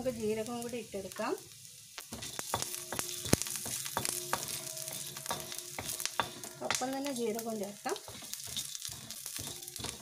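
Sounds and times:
spices sizzling in oil: 0:00.0 - 0:10.0
sharp crackles and ticks: 0:02.0 - 0:10.0
spatula scraping a pan: 0:02.1 - 0:10.0.

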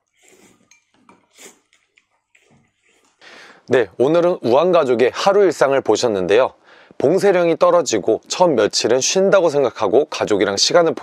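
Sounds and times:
slurping noodles: 0:00.0 - 0:03.2
chopsticks clinking against bowl: 0:00.6 - 0:02.1.

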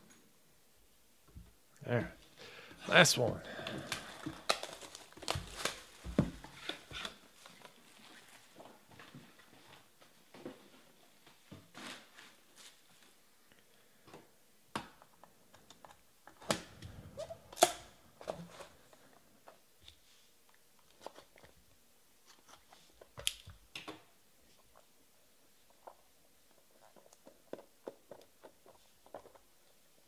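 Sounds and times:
shrink wrap crinkling: 0:03.8 - 0:08.8.

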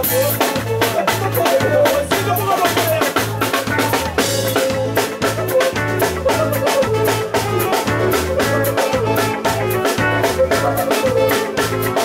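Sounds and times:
drum kit: 0:00.0 - 0:12.0
live band music: 0:00.0 - 0:12.0
pulsing bass line: 0:00.0 - 0:12.0.

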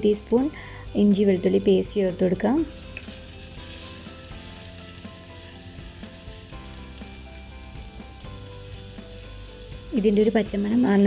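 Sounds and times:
soft background music: 0:00.0 - 0:11.0
paste sizzling in hot oil: 0:00.1 - 0:11.0.

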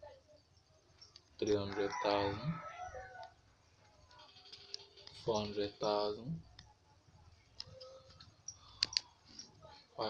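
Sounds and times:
sharp clicks: 0:08.7 - 0:09.2.

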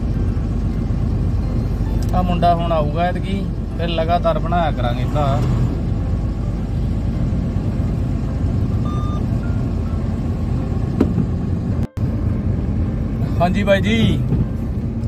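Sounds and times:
truck cab engine rumble: 0:00.0 - 0:15.0.

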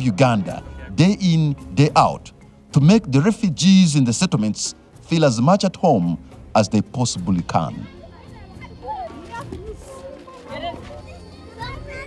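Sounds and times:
background music: 0:00.0 - 0:12.0
children calling and shouting: 0:05.6 - 0:12.0.

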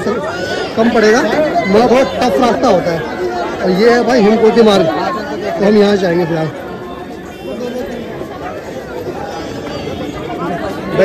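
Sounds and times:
chatter of people talking: 0:00.0 - 0:11.0.

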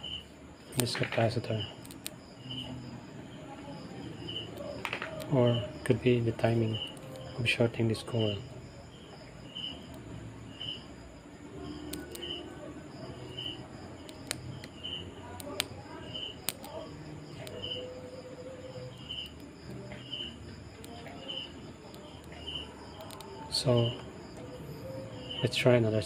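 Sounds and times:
cricket chirping: 0:00.0 - 0:26.0
sharp clicks: 0:00.8 - 0:02.6, 0:14.0 - 0:14.8, 0:16.4 - 0:16.8, 0:19.0 - 0:23.4.

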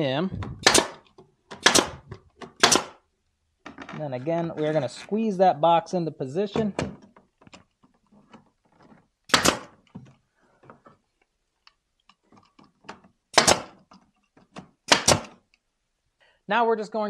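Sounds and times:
nail gun firing into wood: 0:00.6 - 0:03.0, 0:09.3 - 0:09.8, 0:13.3 - 0:13.9, 0:14.8 - 0:15.4.

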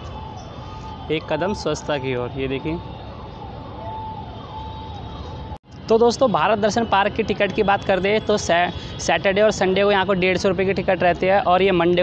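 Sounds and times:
faint siren wailing: 0:00.0 - 0:11.1.

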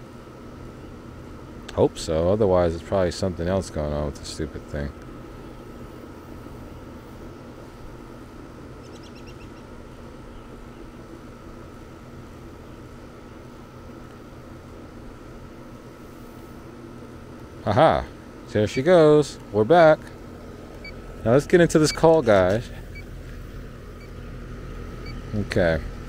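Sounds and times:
air conditioner humming: 0:00.0 - 0:26.0.

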